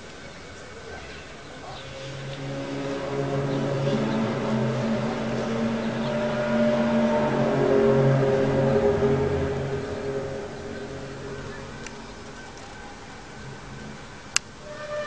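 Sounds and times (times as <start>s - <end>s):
low layered drone: 0.0s - 15.0s.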